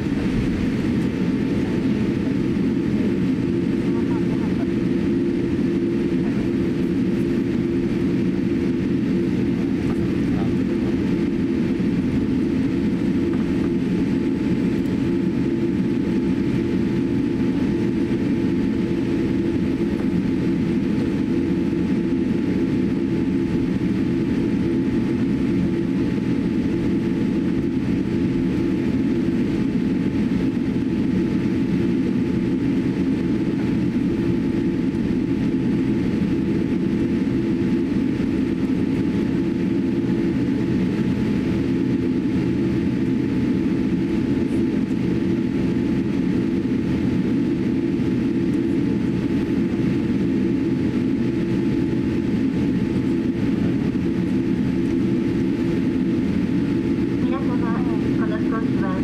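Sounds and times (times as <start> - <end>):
aircraft engines idling rumble: 0.0 - 59.0
cabin air system: 56.7 - 59.0
faint steady tones: 56.9 - 59.0.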